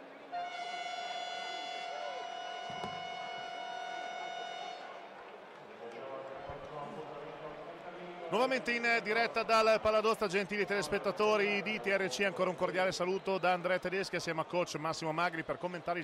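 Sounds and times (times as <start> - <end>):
arena game horn blast: 0.3 - 5.0.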